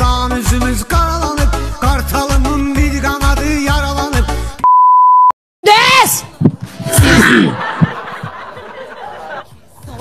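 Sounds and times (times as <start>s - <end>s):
steady test-tone beep: 4.6s - 5.4s.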